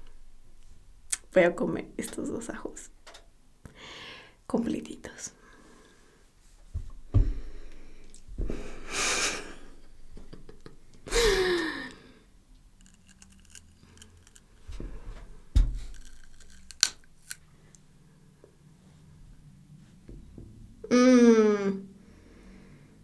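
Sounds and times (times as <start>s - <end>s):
biting raw garlic crunches: 12.8s - 14.4s, 15.8s - 17.4s.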